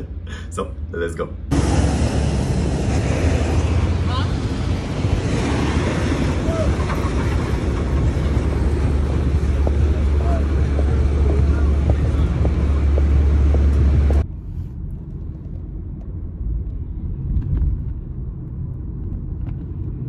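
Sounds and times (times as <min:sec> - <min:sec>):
heavy low rumble: 0:00.0 - 0:20.0
wind buffeting microphone: 0:01.5 - 0:14.3
car cabin rumble: 0:06.1 - 0:20.0
footsteps on pavement: 0:08.1 - 0:14.2.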